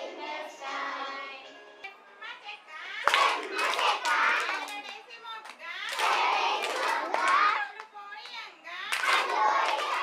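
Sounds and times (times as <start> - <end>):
sharp hand claps: 3.0 - 10.0.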